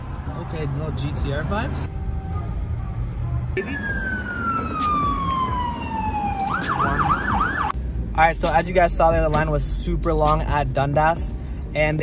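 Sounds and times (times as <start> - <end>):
low road rumble: 0.0 - 12.0
siren wailing: 3.6 - 7.8
siren yelping: 3.6 - 7.8.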